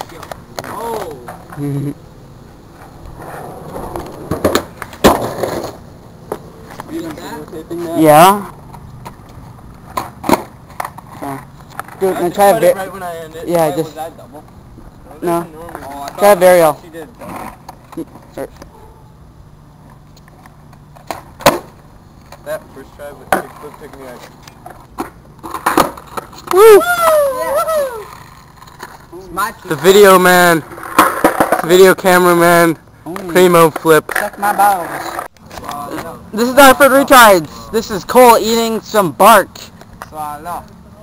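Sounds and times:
skateboard slapping the ground: 0.0s - 1.6s, 2.8s - 12.5s, 15.6s - 16.4s, 19.9s - 22.6s, 23.3s - 29.9s, 30.6s - 31.8s, 33.1s - 36.2s
skateboard wheels rolling: 0.0s - 18.6s, 19.8s - 41.0s
skateboard landing clack: 3.2s - 6.4s, 9.9s - 11.0s, 21.0s - 21.8s, 25.0s - 26.4s, 30.8s - 31.7s
skateboard clacks: 3.2s - 7.2s, 9.9s - 11.2s, 23.3s - 27.2s, 30.6s - 31.8s, 33.1s - 36.1s.

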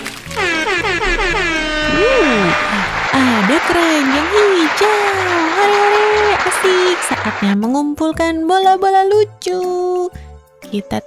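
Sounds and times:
horn-like tone gliding downward: 0.4s - 7.5s
short rising and falling tone: 0.7s - 5.6s.

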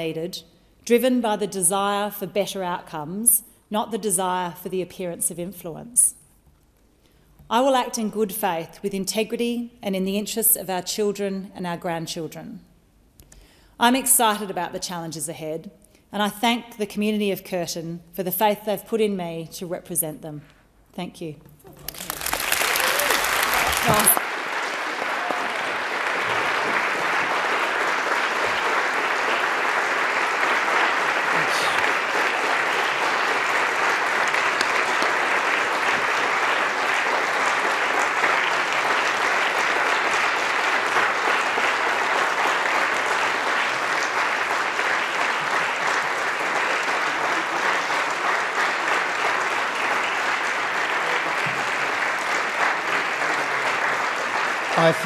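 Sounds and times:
crowd applause: 21.7s - 55.0s.

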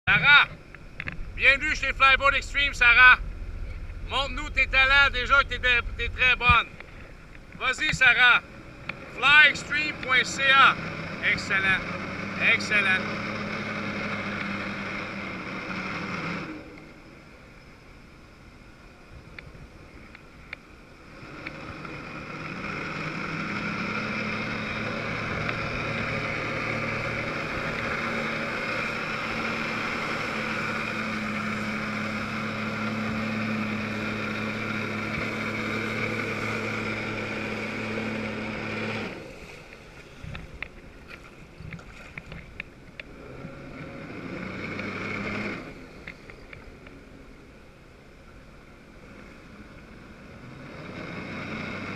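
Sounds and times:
jet ski engine revving: 0.1s - 51.9s.

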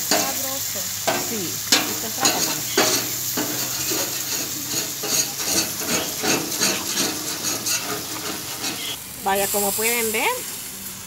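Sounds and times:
steaks sizzling on a griddle: 0.0s - 11.0s
metal spatula scraping griddle: 0.1s - 0.4s, 1.0s - 9.0s.

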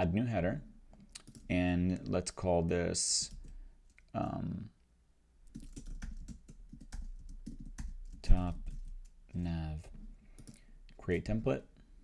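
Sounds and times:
computer keyboard typing: 1.2s - 1.5s, 3.3s - 4.0s, 5.5s - 9.2s, 9.8s - 10.6s.

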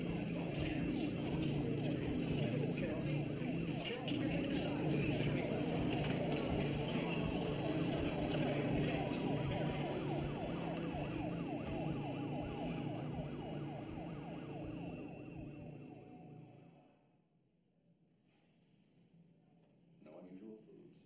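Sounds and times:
ambulance siren yelping: 0.0s - 16.8s.

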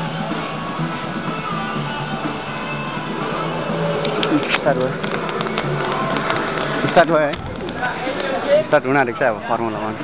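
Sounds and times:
guitar background music: 0.0s - 8.8s.

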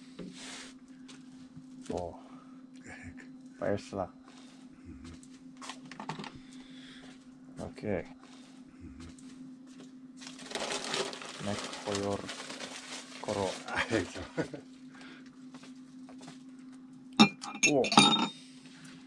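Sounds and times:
steady low hum: 0.0s - 19.0s
metal bowl clink: 17.2s - 18.3s.

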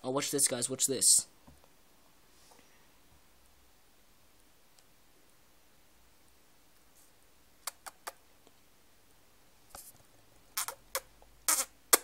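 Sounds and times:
kissing smacks: 7.6s - 8.2s, 10.6s - 12.0s.

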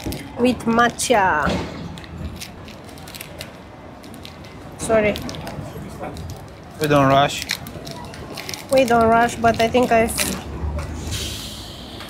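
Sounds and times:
passers-by murmuring: 0.0s - 12.0s
street traffic murmur: 0.0s - 12.0s.

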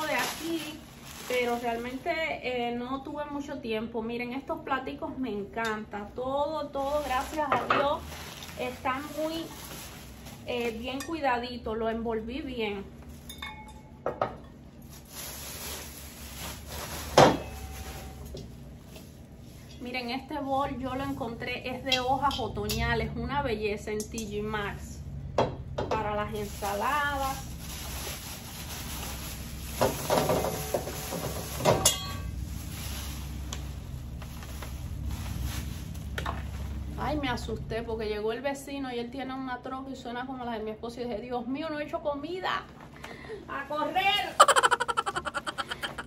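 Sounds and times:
plastic bags rustling: 0.0s - 2.7s, 6.6s - 11.1s, 14.8s - 20.2s, 26.2s - 37.3s, 44.4s - 46.0s.

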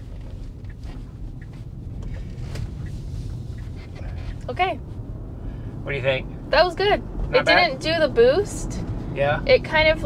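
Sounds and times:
road and tyre noise: 0.0s - 10.0s.

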